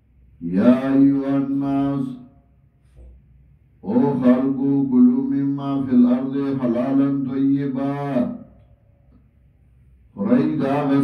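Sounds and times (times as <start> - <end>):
man chanting recitation: 0.4 - 2.6, 3.8 - 8.6, 10.1 - 11.0.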